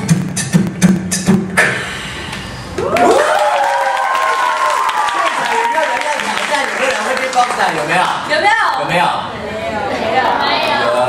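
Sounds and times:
voices cheering woo: 2.8s - 6.4s
applause: 2.9s - 8.1s.

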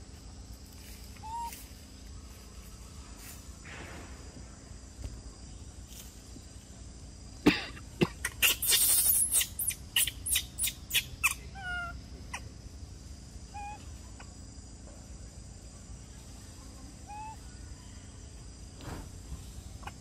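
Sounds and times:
short pitched animal calls: 17.0s - 17.4s
harsh animal calls: 17.0s - 17.5s.

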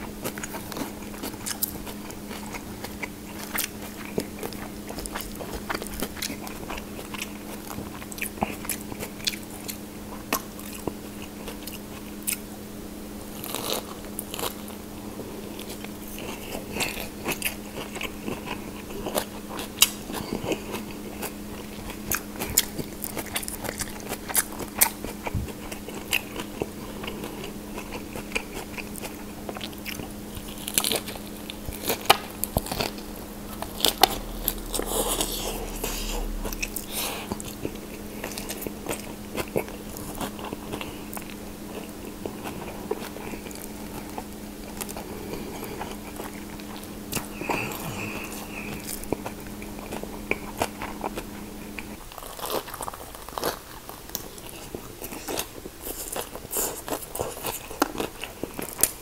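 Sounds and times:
biting and chewing: 0.0s - 12.5s, 13.3s - 59.0s
steady low hum: 0.0s - 59.0s.

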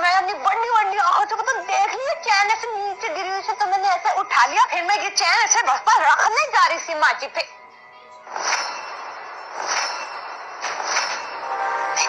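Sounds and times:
sustained music tone: 7.6s - 12.0s.

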